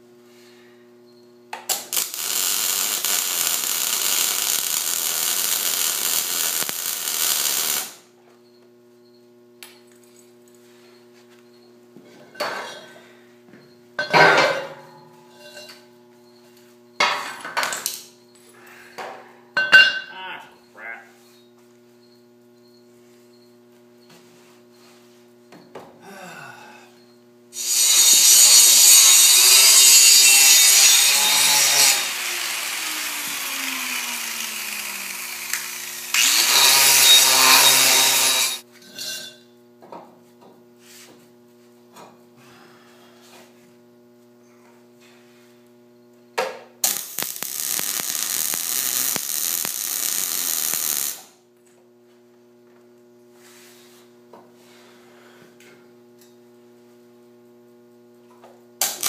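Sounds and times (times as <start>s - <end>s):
hand-held grinder on steel: 1.9s - 8.0s, 27.6s - 38.6s, 46.8s - 51.2s.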